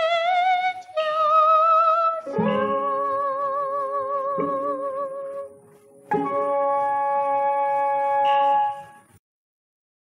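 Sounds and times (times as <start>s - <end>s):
held note on old record: 0.0s - 9.2s.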